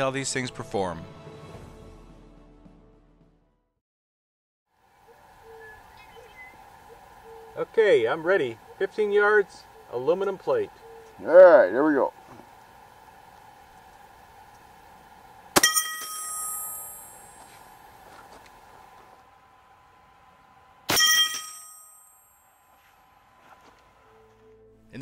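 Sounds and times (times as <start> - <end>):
metal plate target ringing: 15.6 - 17.5, 20.9 - 22.5.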